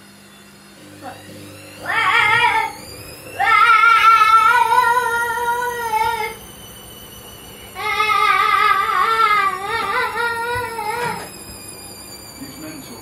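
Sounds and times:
child singing high wavering notes: 1.8 - 2.8, 3.4 - 6.4, 7.7 - 11.3.

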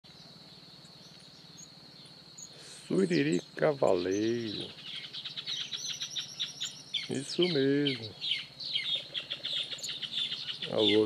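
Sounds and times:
faint bird chirps: 0.0 - 11.0
steady high-pitched whine: 0.1 - 11.0.

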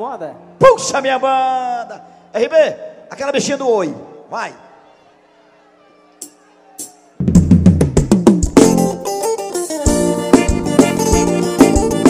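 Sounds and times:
live band playing: 6.2 - 12.0
drum kit kick and snare: 7.2 - 9.0.

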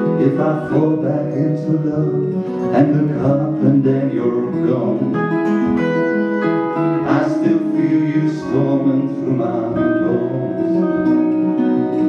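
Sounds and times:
acoustic guitar: 0.0 - 12.0
electric guitar: 0.0 - 12.0.

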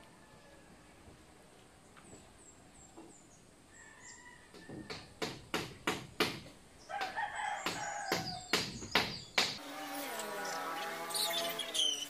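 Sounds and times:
sharp knocks on bamboo: 4.6 - 9.6
rooster crowing: 6.9 - 8.4.

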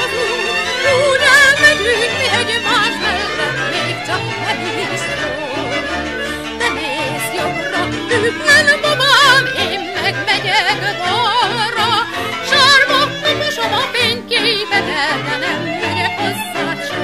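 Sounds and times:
string band accompaniment: 0.0 - 17.0
woman singing with vibrato: 0.0 - 17.0.

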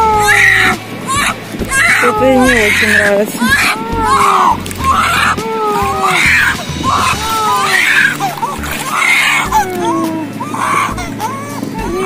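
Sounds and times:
baby crying: 0.0 - 12.0.

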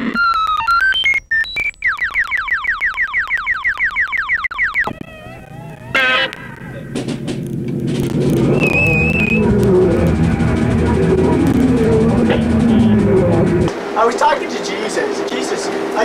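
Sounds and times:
wavering warbling tones: 0.0 - 13.8
falling synthesizer zaps: 1.4 - 6.9, 7.9 - 13.7
low rumbling noise: 4.9 - 14.5.

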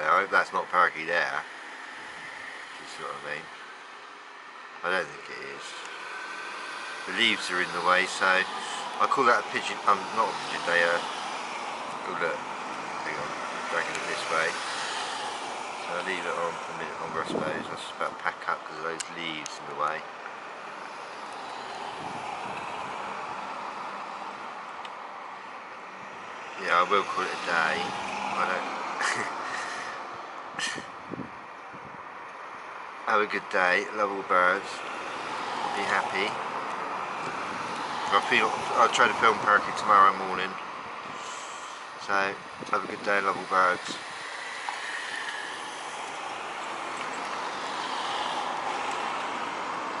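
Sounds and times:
hiss of passing cars: 0.0 - 50.0
road traffic rushing: 0.0 - 50.0.

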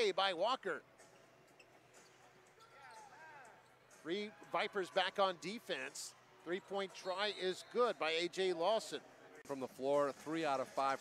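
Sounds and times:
quiet arena background noise: 0.0 - 11.0.

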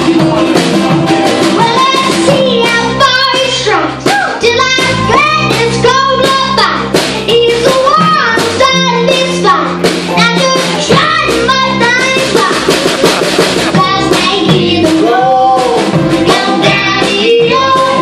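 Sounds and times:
acoustic band music: 0.0 - 18.0
girl singing: 1.6 - 12.7, 13.7 - 18.0.

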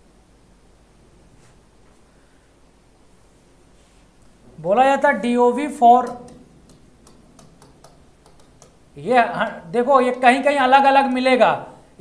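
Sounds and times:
chalk tapping on blackboard: 6.0 - 8.8.

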